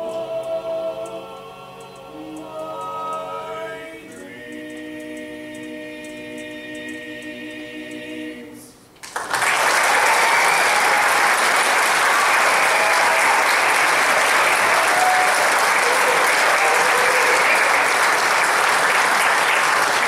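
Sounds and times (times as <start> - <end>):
audience applause: 9.0 - 20.0.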